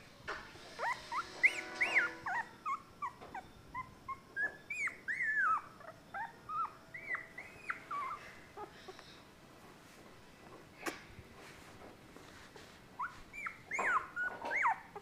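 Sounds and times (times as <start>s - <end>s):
puppy whimpering and squeaking: 0.6s - 9.0s, 13.0s - 15.0s.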